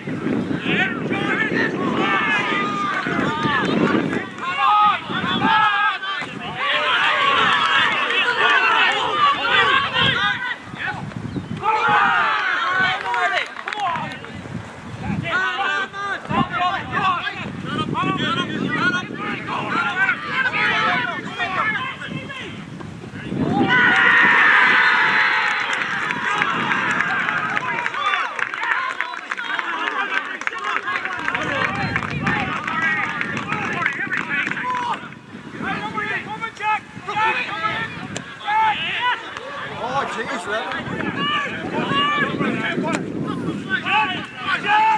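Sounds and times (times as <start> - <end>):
crowd shouting and calling: 0.0 - 44.9.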